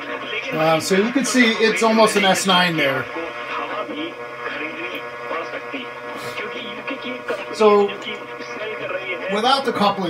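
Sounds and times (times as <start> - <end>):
faint radio voice: 0.0 - 10.0
radio hiss: 0.0 - 10.0
steady interference buzz: 0.0 - 10.0.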